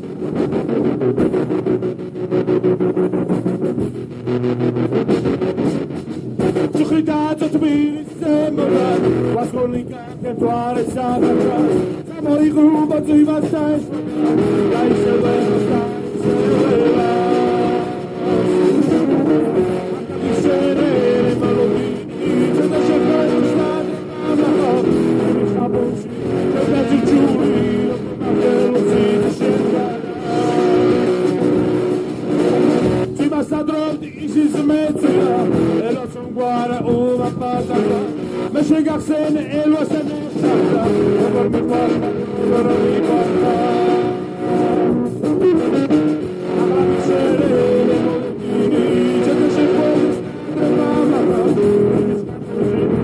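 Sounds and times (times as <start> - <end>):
rock band music with singing: 0.0 - 53.0.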